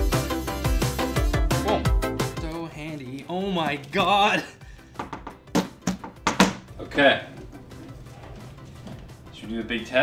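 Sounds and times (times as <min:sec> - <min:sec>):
background music: 0:00.0 - 0:10.0
picture frame knocks and taps: 0:05.0 - 0:06.7.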